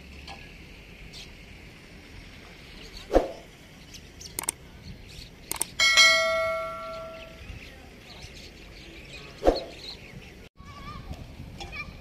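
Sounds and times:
mouse clicks: 4.4 - 4.6, 5.5 - 5.7
bell ding: 5.8 - 7.4.

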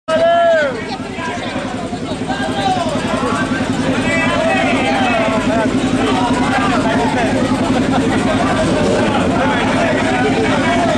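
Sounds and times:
crowd chatter: 0.1 - 10.9
motorcycle engines idling: 0.1 - 10.9.

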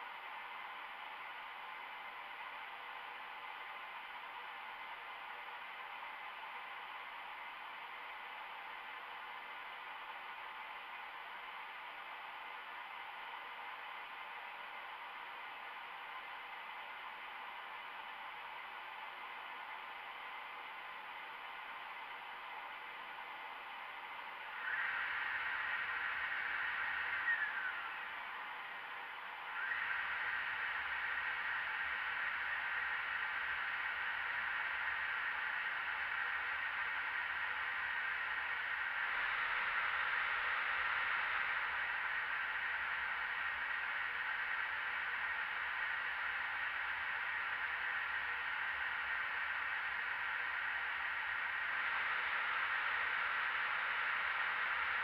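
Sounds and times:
air rush and fan noise: 0.0 - 55.0
faint steady tone: 0.0 - 55.0.

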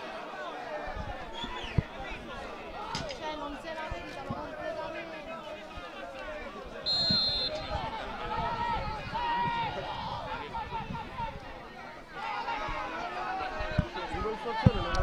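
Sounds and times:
voices shouting: 0.0 - 15.0
high whistle blast: 6.9 - 7.7.

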